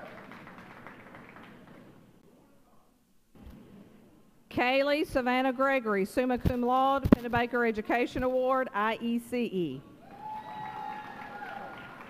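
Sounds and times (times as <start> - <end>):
audience applause: 0.0 - 1.9, 10.2 - 12.0.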